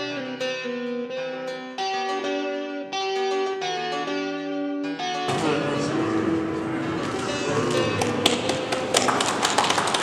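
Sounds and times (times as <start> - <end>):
people clapping: 5.3 - 10.0.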